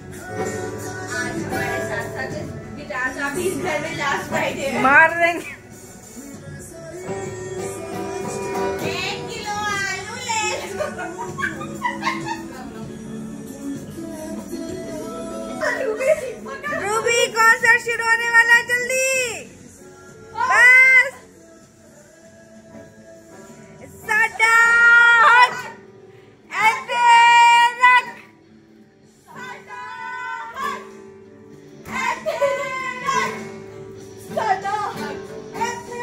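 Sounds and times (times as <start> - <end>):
acoustic guitar playing: 0.0 - 21.6, 22.6 - 36.0
women laughing and squealing: 10.1 - 13.0, 15.6 - 17.3, 31.9 - 33.5.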